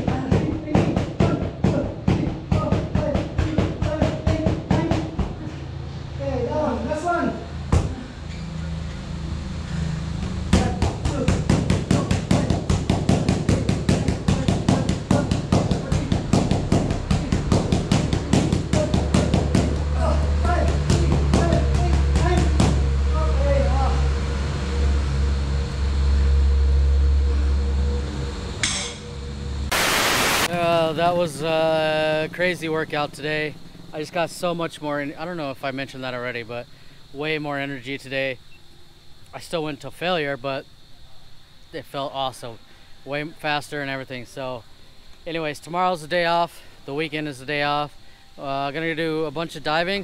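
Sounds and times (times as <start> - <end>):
low hum: 5.2 - 12.7, 13.5 - 34.4
man speaking: 23.1 - 24.2, 30.5 - 38.4, 45.3 - 50.0
burst of static hiss: 29.6 - 31.8
person speaking: 30.5 - 36.0.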